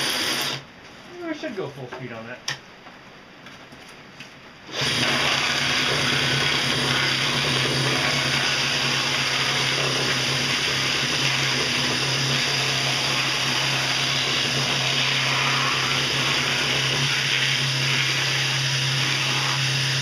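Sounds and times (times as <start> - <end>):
drill motor hum: 0.0 - 0.6, 4.7 - 20.0.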